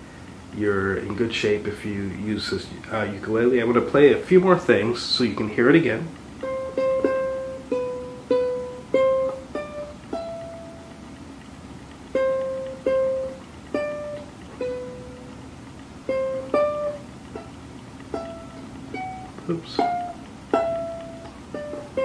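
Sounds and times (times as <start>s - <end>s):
ukulele plucked melody: 0.9s - 22.0s.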